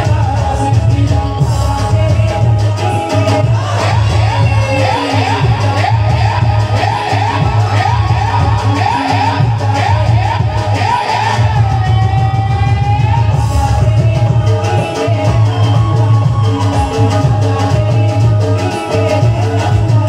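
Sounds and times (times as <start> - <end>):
harmonium: 0.0 - 20.0
person singing: 0.0 - 20.0
steady drum beat: 0.0 - 20.0.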